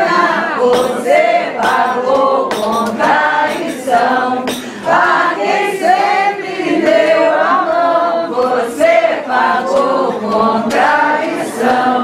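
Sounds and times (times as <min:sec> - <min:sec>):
group of people singing: 0:00.0 - 0:12.0.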